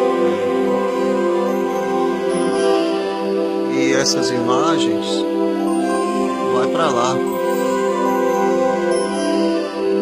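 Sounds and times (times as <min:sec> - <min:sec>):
slow sustained background music: 0:00.0 - 0:10.0.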